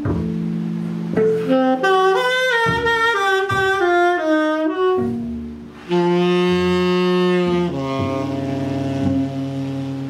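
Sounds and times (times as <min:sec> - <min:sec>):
tenor saxophone holding low notes: 0:00.0 - 0:10.0
cello: 0:04.9 - 0:10.0.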